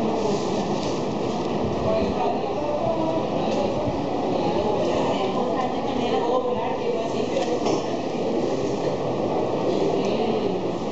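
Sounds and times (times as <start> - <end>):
rumbling background noise: 0.0 - 10.9.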